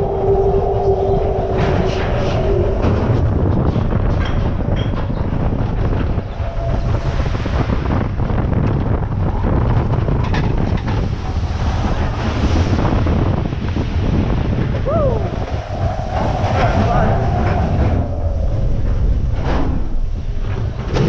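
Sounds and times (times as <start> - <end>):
coaster car rumbling on track: 0.0 - 21.0
wind buffeting microphone: 0.0 - 21.0.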